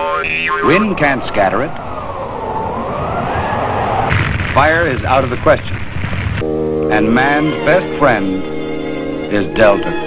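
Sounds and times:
whistling wind: 0.0s - 6.4s.

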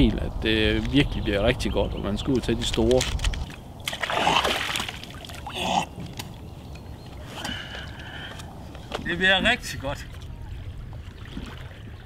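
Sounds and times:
seawater splashing and sloshing: 3.8s - 5.6s, 9.1s - 12.0s
water lapping: 3.8s - 6.6s, 7.2s - 12.0s.

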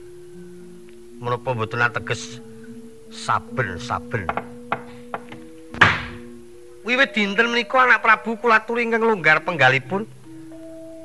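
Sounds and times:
sustained gamelan notes: 0.0s - 11.0s
person speaking: 3.1s - 4.5s
loud wooden knock: 4.2s - 6.3s.

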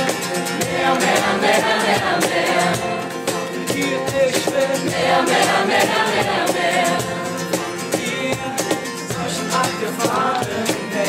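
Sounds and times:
guitar: 0.0s - 11.0s
many voices singing wordless chorus: 0.0s - 11.0s.

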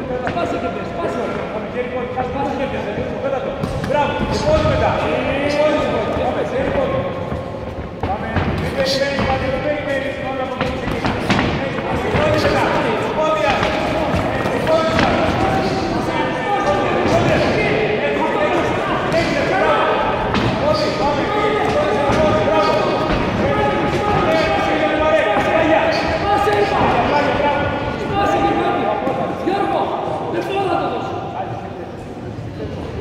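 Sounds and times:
voices shouting in a hall: 0.0s - 33.0s.

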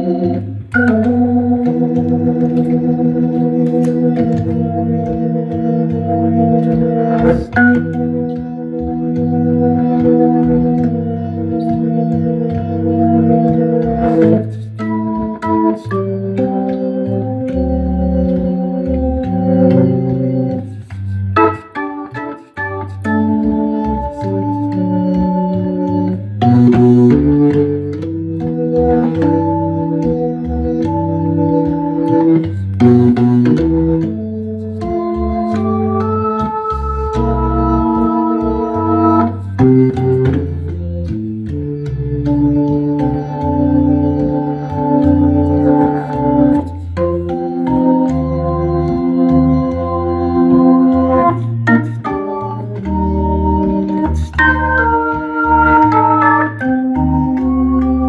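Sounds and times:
organ playing jazz: 0.0s - 58.0s.

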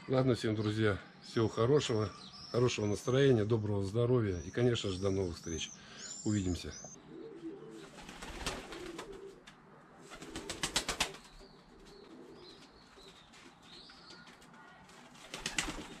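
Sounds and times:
pigeon cooing: 7.0s - 9.4s, 11.7s - 12.8s
pigeon wings flapping: 8.0s - 9.4s, 10.0s - 11.4s, 14.2s - 16.0s.

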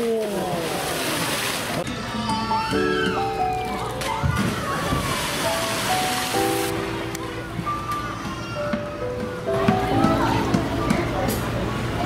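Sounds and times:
heavy splash: 0.0s - 1.8s, 4.3s - 6.8s
water rushing and churning: 0.0s - 1.9s, 4.3s - 7.0s
background music with held notes: 1.9s - 11.8s.

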